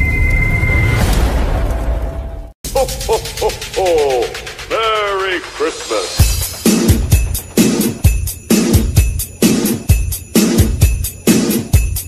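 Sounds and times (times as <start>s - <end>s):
pitched vocal shouts: 2.7s - 6.2s.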